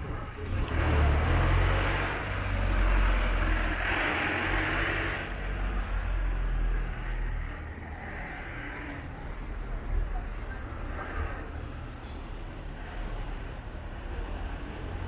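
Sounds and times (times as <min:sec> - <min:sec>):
tyres noisy on road: 0:00.0 - 0:15.0
truck engine rumbling past: 0:00.4 - 0:09.3.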